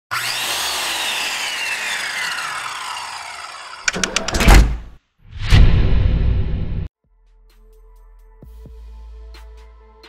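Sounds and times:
sharp clicks: 3.9 - 4.8.

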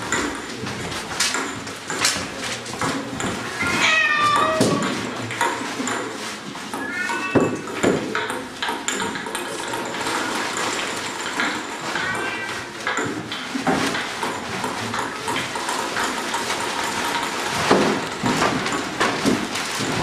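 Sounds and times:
high wavering cries: 6.8 - 7.5
plastic sheeting crinkling: 10.1 - 20.0.

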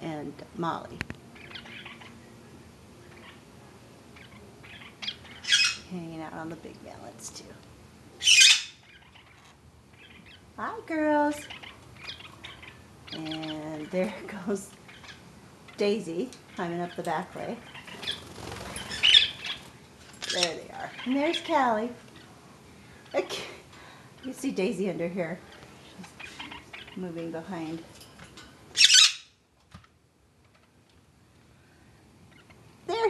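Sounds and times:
parakeet squawk: 1.4 - 2.2, 3.1 - 3.4, 4.2 - 5.9, 8.2 - 10.5, 11.4 - 13.4, 17.7 - 21.6, 26.1 - 27.0, 28.8 - 29.4
parakeets chirping: 1.4 - 2.3, 3.0 - 3.5, 4.1 - 5.9, 8.2 - 22.4, 24.1 - 27.8, 28.7 - 29.4, 32.3 - 33.0.

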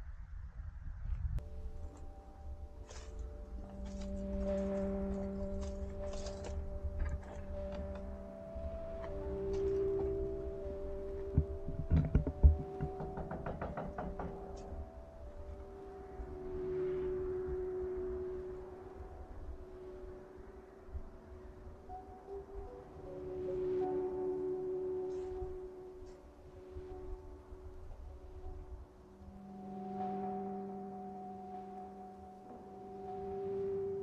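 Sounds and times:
slow ambient music: 1.4 - 34.0
knocks and thuds: 11.4 - 14.5.

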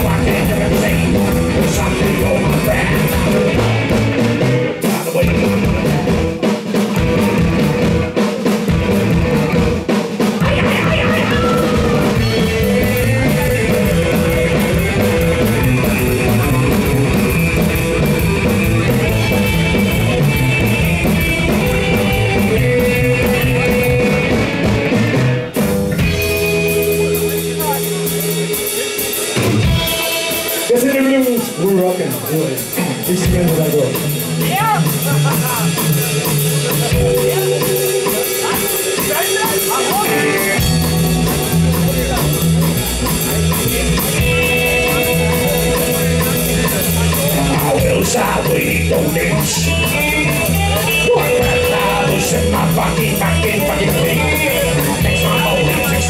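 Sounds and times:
person singing: 0.0 - 6.2, 10.4 - 17.3, 44.2 - 56.0
live psychobilly band playing: 0.0 - 56.0.

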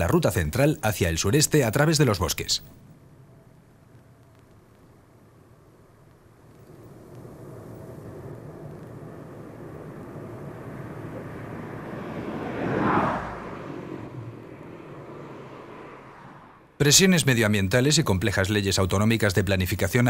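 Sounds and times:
high-speed train passing: 6.7 - 16.8.

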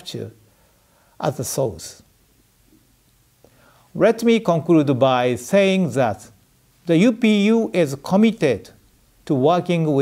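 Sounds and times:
man speaking: 0.0 - 0.4, 1.2 - 2.1, 3.9 - 10.0
soft intake of breath: 0.4 - 1.2, 3.4 - 4.0.

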